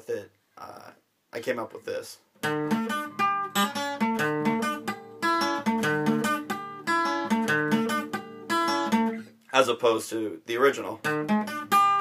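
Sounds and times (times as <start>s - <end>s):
acoustic guitar riff: 2.4s - 10.0s, 10.7s - 12.0s.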